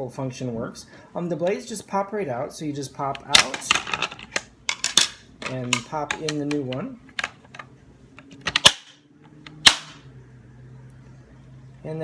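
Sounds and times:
sharp plastic snaps: 8.2 - 10.0.

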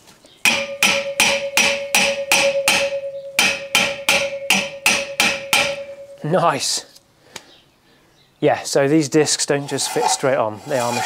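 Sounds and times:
hammer tapping metal disc: 0.5 - 6.3.

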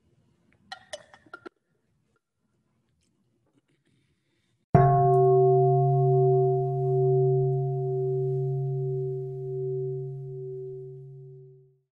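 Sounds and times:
singing bowl ringing: 4.8 - 11.8.

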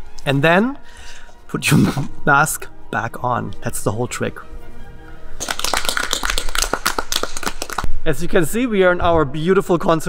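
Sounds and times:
audience applauding: 5.4 - 7.9.

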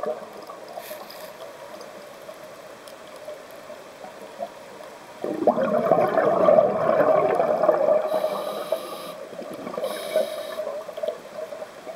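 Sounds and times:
exhaled bubbles rushing: 5.2 - 8.4, 9.2 - 9.9
short high regulator hisses: 8.1 - 9.2, 9.8 - 10.7.

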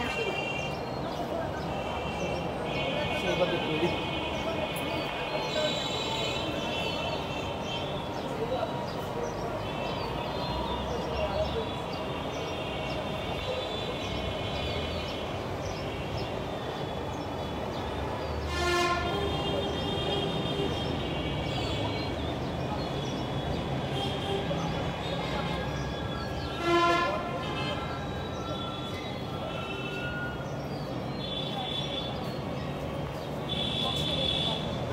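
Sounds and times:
urban background noise: 0.0 - 34.9.

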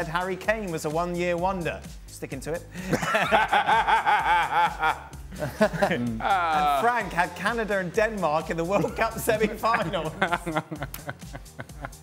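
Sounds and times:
man laughing heartily: 2.8 - 6.9, 8.8 - 12.0.

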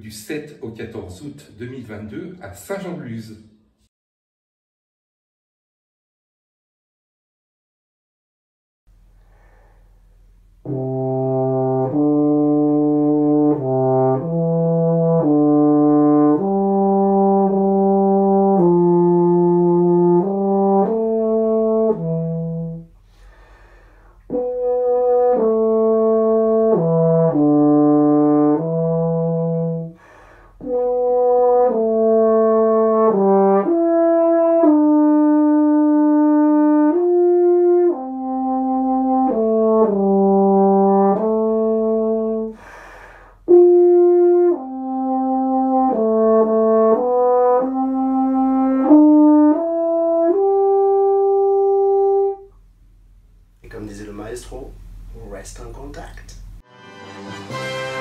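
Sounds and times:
low brass melody: 10.6 - 23.1, 24.2 - 42.6, 43.4 - 52.6, 56.6 - 58.0.

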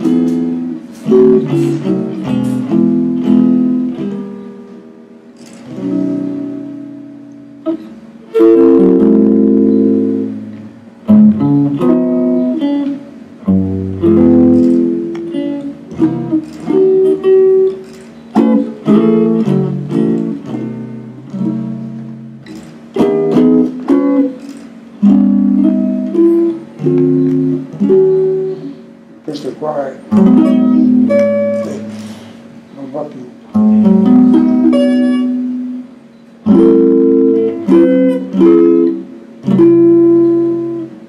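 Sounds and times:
jazz guitar playing chords: 0.0 - 41.0.

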